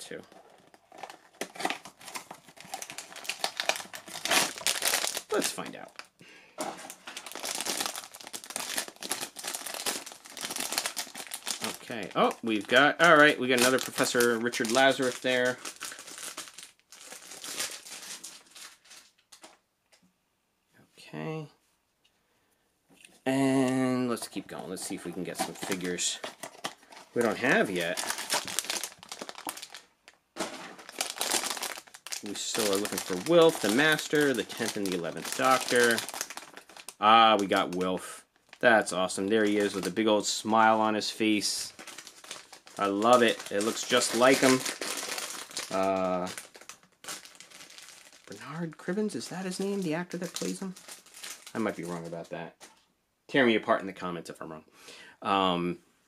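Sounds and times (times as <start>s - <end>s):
foil wrapper crinkling: 0.3s - 19.6s, 24.3s - 52.8s.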